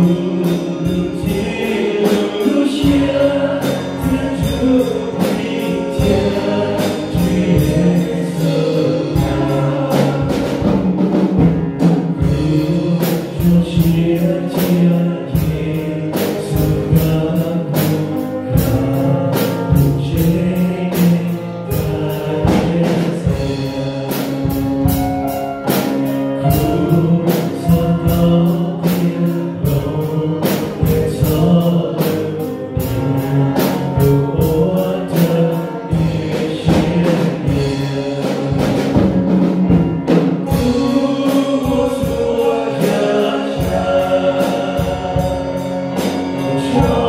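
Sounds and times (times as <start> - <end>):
drum beat: 0.0 - 14.9, 34.1 - 47.0
male voices singing a hymn: 0.0 - 25.1, 25.7 - 47.0
sustained chords: 32.6 - 47.0.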